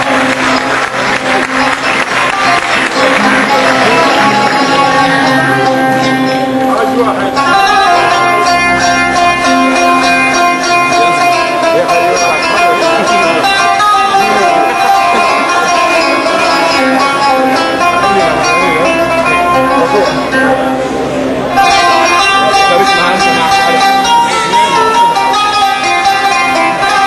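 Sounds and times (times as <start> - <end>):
ensemble with plucked strings: 0.0 - 27.0.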